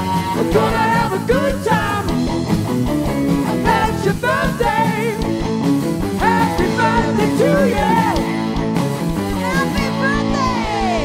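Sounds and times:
drum kit: 0.0s - 11.0s
electric guitar bending notes: 0.0s - 11.0s
live rock band playing: 0.0s - 11.0s.

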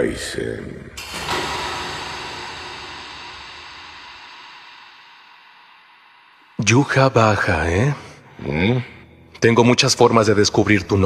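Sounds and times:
deep noisy rumble: 0.9s - 9.0s.

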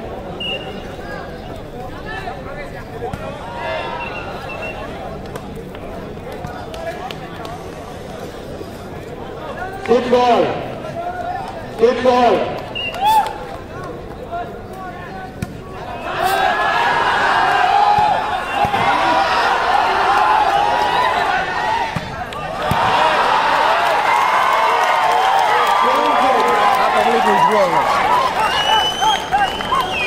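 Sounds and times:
crowd talking and calling out: 0.0s - 30.0s
volleyball being hit: 21.9s - 23.0s.

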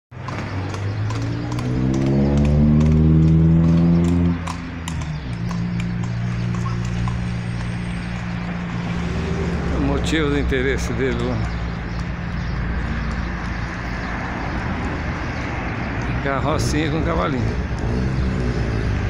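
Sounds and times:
vehicle engine running: 0.3s - 19.0s.

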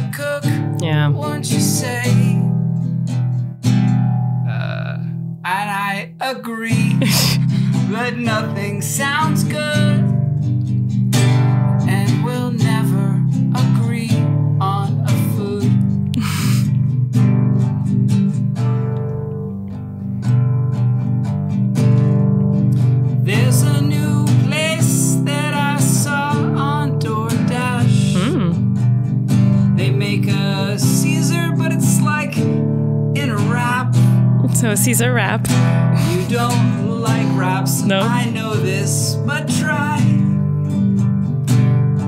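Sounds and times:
man singing: 0.0s - 2.5s, 5.4s - 10.1s, 11.8s - 15.8s, 23.2s - 28.6s, 29.8s - 32.6s, 33.2s - 34.2s, 35.6s - 40.4s
acoustic guitar strummed chords: 0.0s - 42.0s.

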